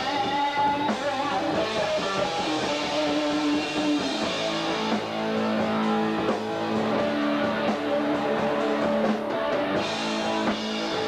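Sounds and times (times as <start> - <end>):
drums: 0.0 - 11.0
electric guitars ringing: 0.0 - 11.0.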